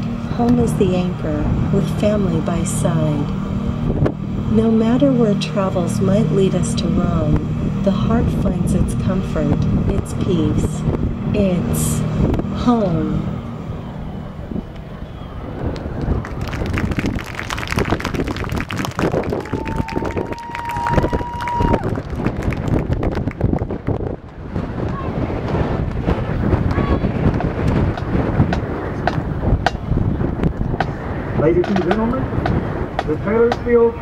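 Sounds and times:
steady high tone: 0.0s - 15.7s
outdoor crowd noise: 0.0s - 34.0s
wind buffeting microphone: 0.0s - 34.0s.

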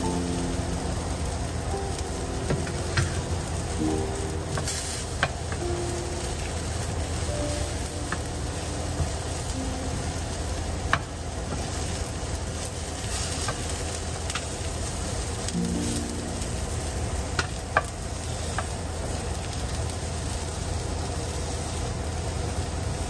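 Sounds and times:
food sizzling in a pan: 0.0s - 23.0s.

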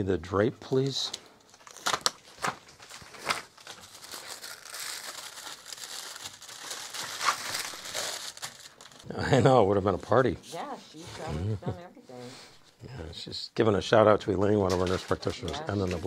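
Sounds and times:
paper drape crinkling: 14.7s - 16.0s.

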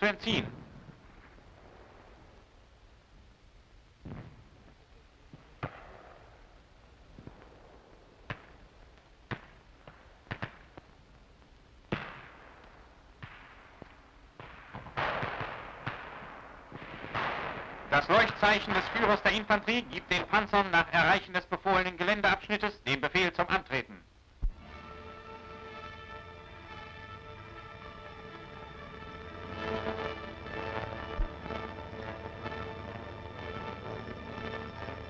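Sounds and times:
gunshots: 14.4s - 20.6s
rumbling shell bursts: 14.4s - 21.5s.

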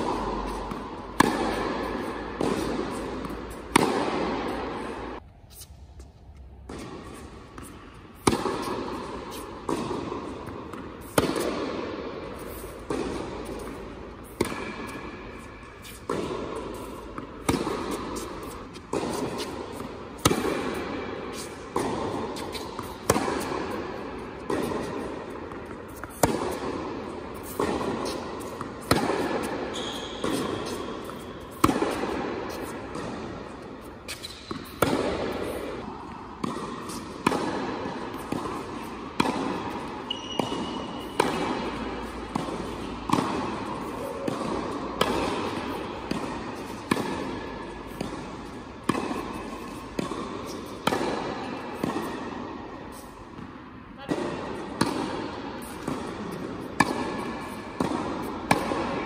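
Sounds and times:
tennis ball struck by rackets: 0.0s - 5.2s, 6.4s - 59.0s.

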